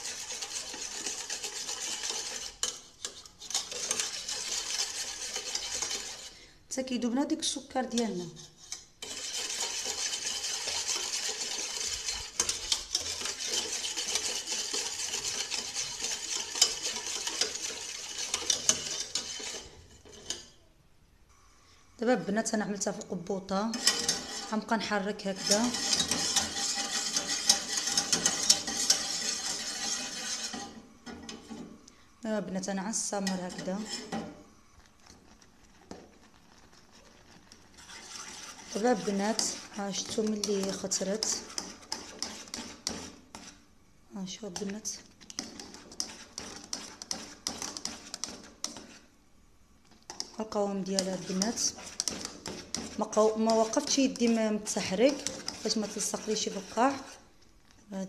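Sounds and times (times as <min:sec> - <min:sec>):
whisk swishing in saucepan: 0:00.0 - 0:06.4, 0:07.8 - 0:20.6, 0:23.7 - 0:31.8, 0:32.5 - 0:43.7, 0:44.4 - 0:49.2, 0:49.8 - 0:57.4.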